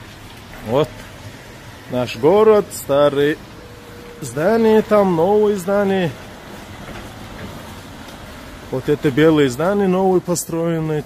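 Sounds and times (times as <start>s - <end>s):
city street traffic: 0.0s - 11.0s
truck driving off: 0.0s - 11.0s.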